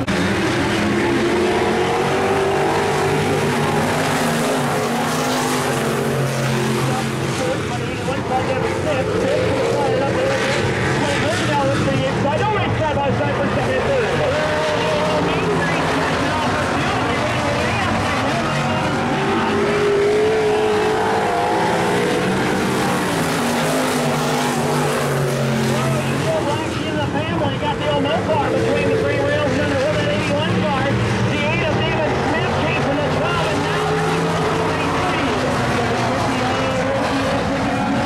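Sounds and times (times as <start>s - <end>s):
stock car engines racing: 0.0s - 38.0s.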